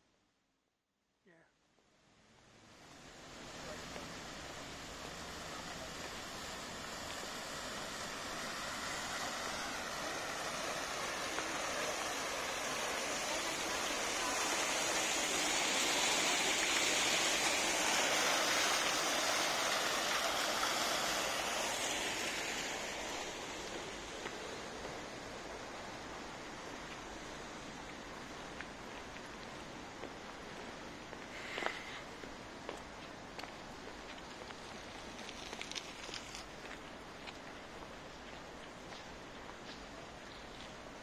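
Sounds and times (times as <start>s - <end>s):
fountain splashing into stone basin: 3.1s - 25.0s.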